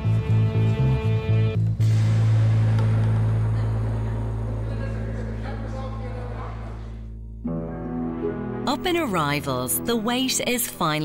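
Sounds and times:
loud low drone: 1.8 - 8.8.

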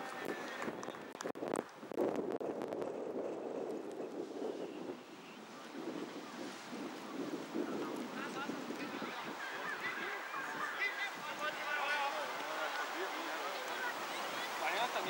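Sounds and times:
wind noise on microphone: 0.0 - 15.0.

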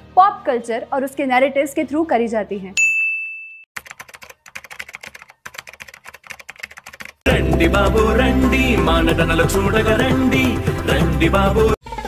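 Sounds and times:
keyboard typing: 3.8 - 7.2
loud music: 7.3 - 11.8.

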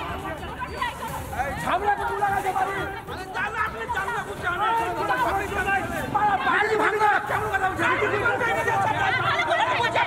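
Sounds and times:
crowd chatter: 0.0 - 10.0
men arguing: 1.6 - 10.0.

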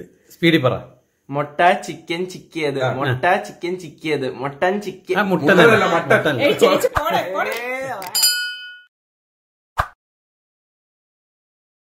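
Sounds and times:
notification bell ding: 8.1 - 8.9.

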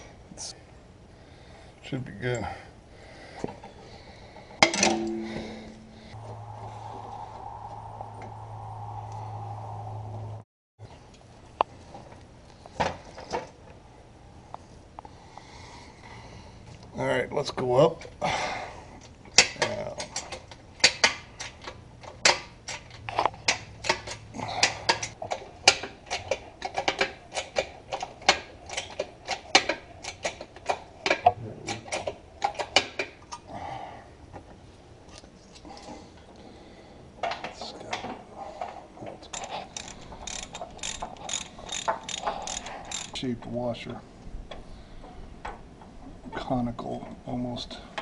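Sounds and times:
hydraulic jack clicking: 39.3 - 43.2.

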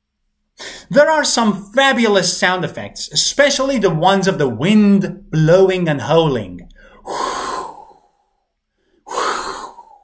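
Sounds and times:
man breathing loudly: 0.6 - 0.9, 6.7 - 10.0.

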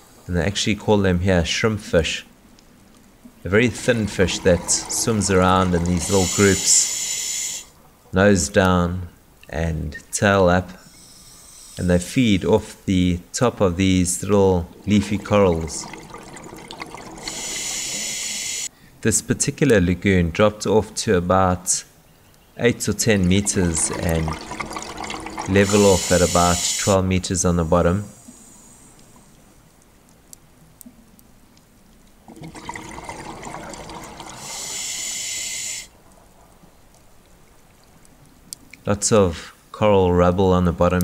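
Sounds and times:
underwater water noise: 1.8 - 8.1, 13.6 - 18.7, 22.6 - 38.8
bubbling rush: 3.5 - 7.3, 14.1 - 18.7, 22.8 - 27.0, 32.2 - 35.8
scuba regulator hissing: 6.0 - 7.7, 17.2 - 18.7, 25.5 - 27.0, 34.4 - 35.9.

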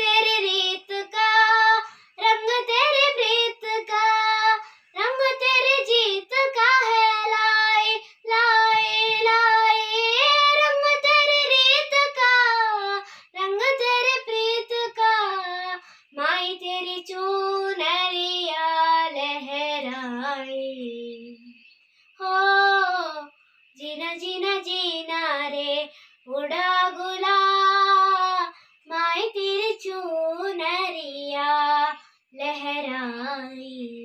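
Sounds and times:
girl singing unaccompanied: 0.0 - 34.0
girl breathing: 1.8 - 2.2, 4.6 - 5.0, 13.0 - 13.4.

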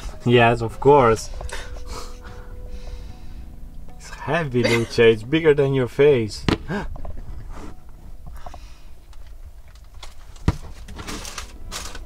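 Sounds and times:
rustling: 6.9 - 12.0.

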